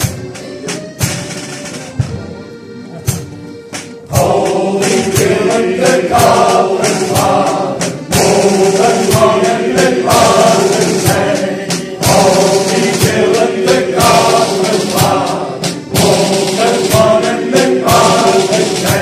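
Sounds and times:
drum kit steady beat: 0:00.0 - 0:19.0
men's choir singing: 0:04.0 - 0:19.0.

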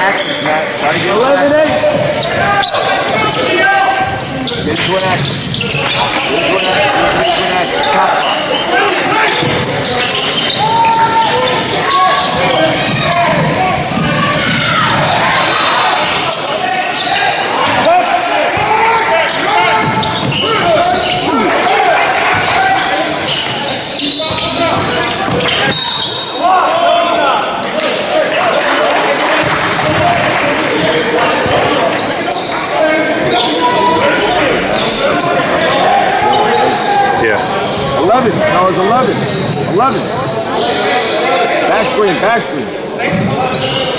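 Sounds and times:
players calling out: 0:00.0 - 0:43.9.

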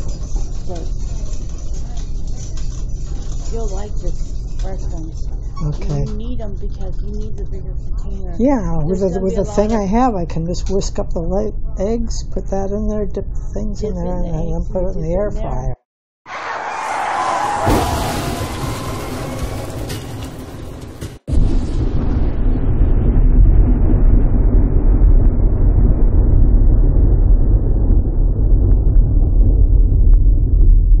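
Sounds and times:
loud deep rumble: 0:00.0 - 0:15.8, 0:17.2 - 0:31.0
whoosh with falling tone: 0:16.3 - 0:20.6.

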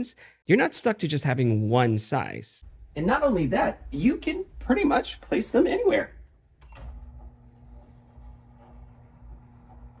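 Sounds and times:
electric motor hum: 0:06.8 - 0:10.0.

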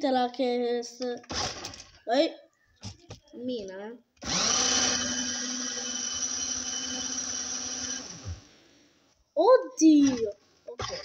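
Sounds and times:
small electric motor whine: 0:04.2 - 0:08.5.

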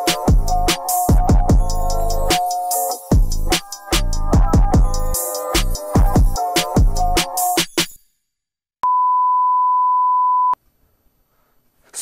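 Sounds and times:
electronic music with drums: 0:00.0 - 0:08.0.

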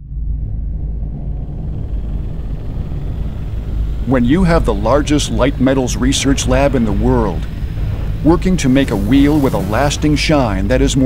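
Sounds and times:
deep rumbling drone: 0:00.0 - 0:11.0.

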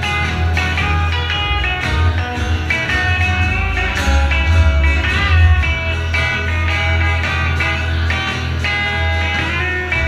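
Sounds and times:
electric lead guitar: 0:00.0 - 0:10.0
plucked upright bass: 0:00.0 - 0:10.0
strummed acoustic guitar: 0:00.0 - 0:10.0.

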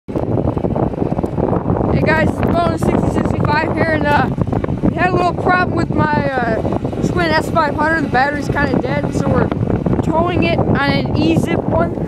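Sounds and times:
wind buffeting microphone: 0:00.1 - 0:12.0.

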